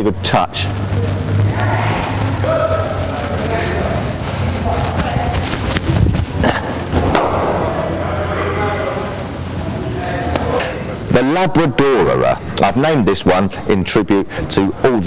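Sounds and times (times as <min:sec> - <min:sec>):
indistinct voices: 0:00.0 - 0:15.0
steady low hum: 0:00.0 - 0:15.0
cricket ball thudding: 0:06.9 - 0:07.9.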